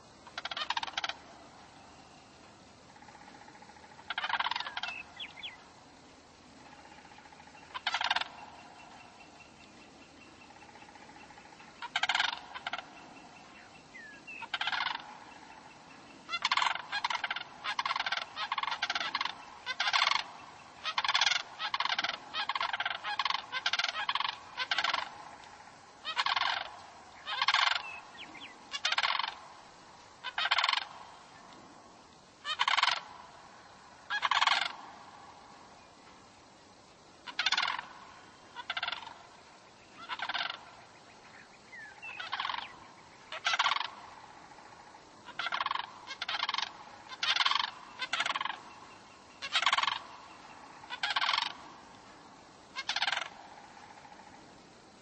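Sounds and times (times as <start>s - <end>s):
short bird calls: 0.0s - 2.2s, 2.9s - 5.7s, 6.6s - 29.6s, 30.2s - 31.6s, 32.4s - 35.4s, 37.2s - 54.4s.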